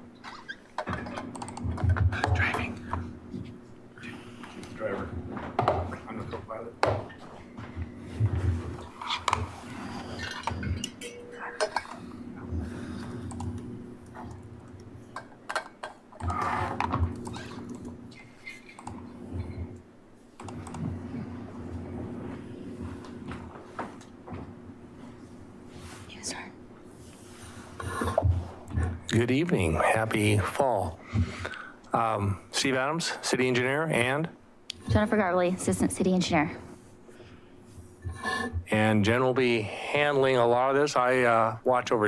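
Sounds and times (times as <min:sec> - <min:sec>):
low room hum: 0:00.0 - 0:42.0.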